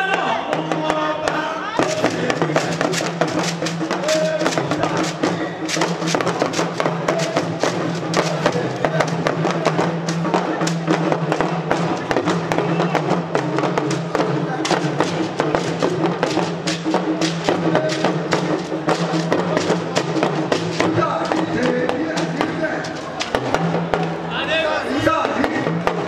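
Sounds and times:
talking drum: 0.0s - 26.0s
gourd shakers: 1.8s - 12.9s, 14.5s - 23.6s.

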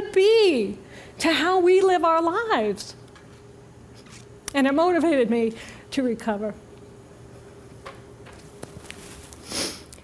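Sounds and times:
woman speaking: 0.0s - 3.0s, 4.5s - 6.6s
faint steady hum: 0.0s - 10.0s.

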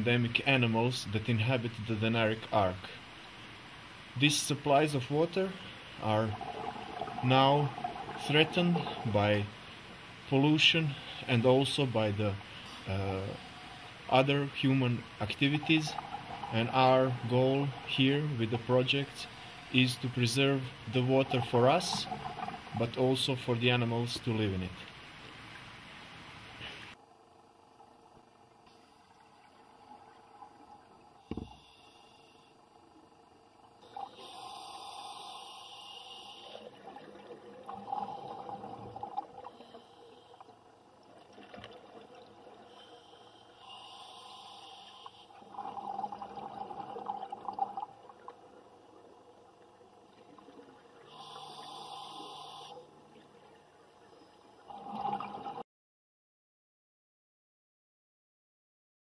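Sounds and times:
exhaled bubbles rushing underwater: 6.0s - 9.2s, 15.0s - 18.7s, 20.8s - 23.0s, 36.4s - 39.8s, 45.4s - 51.1s, 54.7s - 55.6s.

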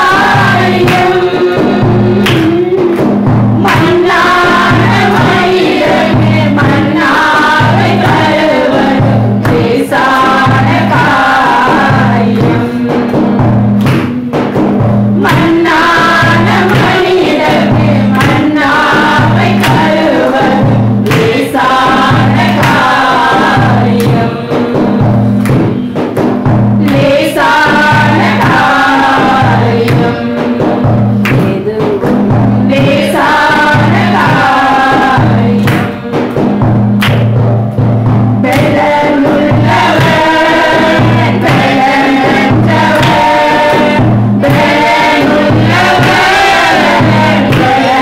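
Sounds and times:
women singing into microphones: 0.0s - 26.1s, 26.8s - 36.6s, 38.4s - 48.0s
low accompaniment line: 0.0s - 48.0s.

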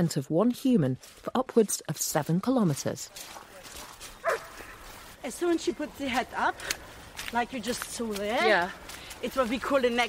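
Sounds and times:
faint background noise: 0.0s - 10.0s
dog yelping: 4.2s - 4.8s.

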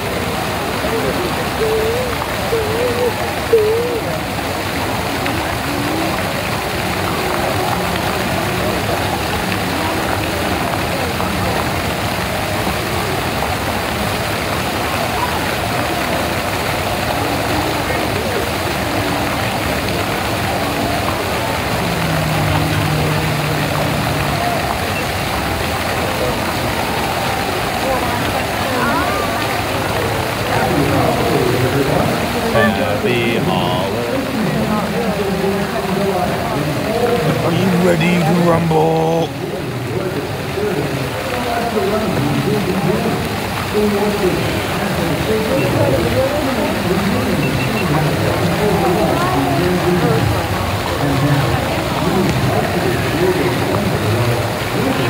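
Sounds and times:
crowd babble: 0.0s - 55.0s
nearer voice: 0.9s - 4.4s, 32.5s - 34.2s, 37.2s - 39.4s.

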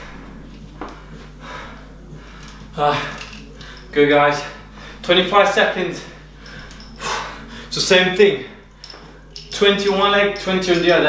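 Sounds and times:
man breathing hard: 0.0s - 3.9s, 4.6s - 5.1s, 6.2s - 7.8s
low steady hum: 0.0s - 11.0s.

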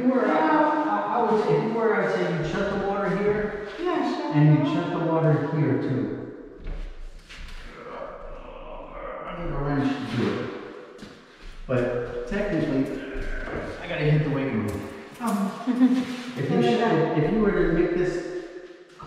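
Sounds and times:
people talking: 0.0s - 6.1s, 7.7s - 10.4s, 11.7s - 18.2s.

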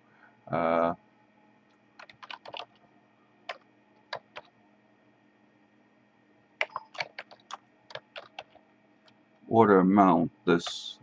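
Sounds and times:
computer keyboard typing: 2.0s - 2.8s, 3.5s - 4.5s, 6.6s - 9.2s.

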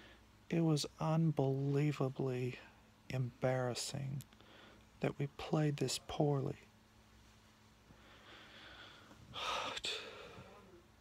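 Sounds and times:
man breathing heavily: 7.9s - 10.6s.

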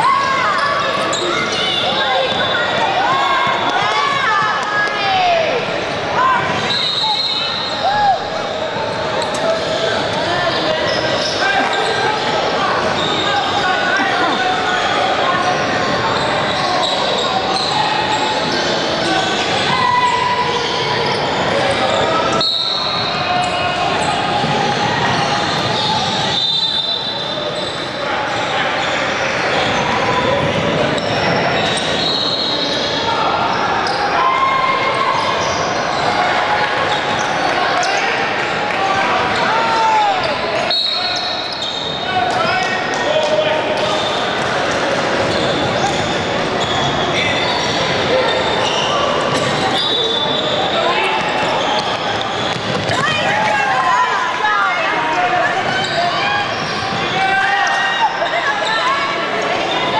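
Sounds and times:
sneakers squeaking: 0.0s - 4.4s, 6.4s - 38.2s, 39.2s - 42.8s, 43.8s - 53.7s, 55.2s - 59.9s
people calling out: 9.7s - 18.3s.

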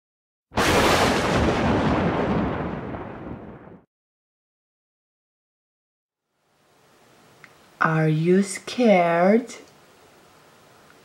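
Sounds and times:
deep rumbling boom: 0.6s - 3.9s.

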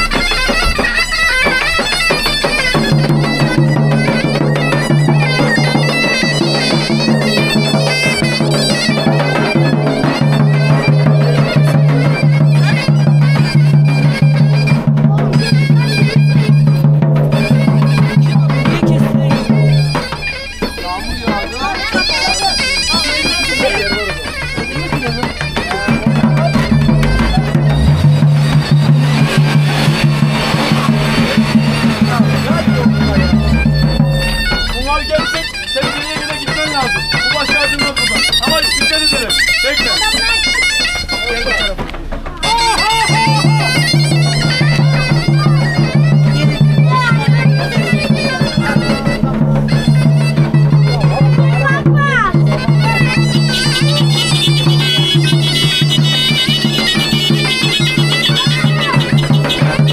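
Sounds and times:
crowd talking: 0.0s - 59.9s
folk dance music on reed instrument: 0.0s - 59.9s
steady low hum: 26.3s - 35.6s.

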